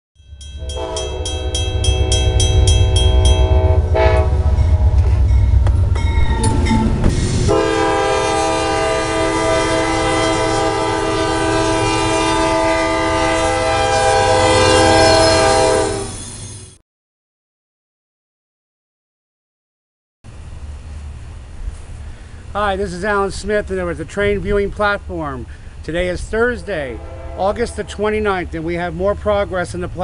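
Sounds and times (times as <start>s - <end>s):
crossing signal bell ringing: 0.2s - 7.6s
locomotive engine rumble: 0.3s - 16.7s, 20.3s - 30.0s
train air horn: 0.6s - 5.3s, 7.4s - 16.2s, 26.9s - 28.0s.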